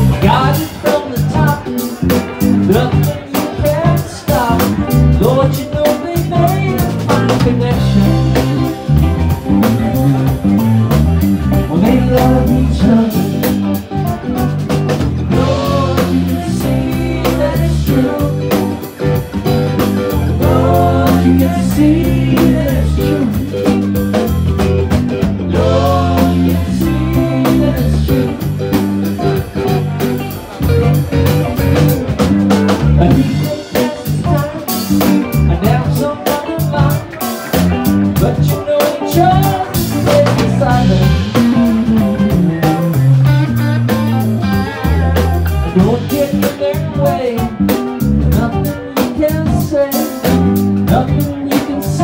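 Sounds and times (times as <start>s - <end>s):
drum kit: 0.0s - 52.0s
electric bass: 0.0s - 52.0s
electric guitar: 0.0s - 52.0s.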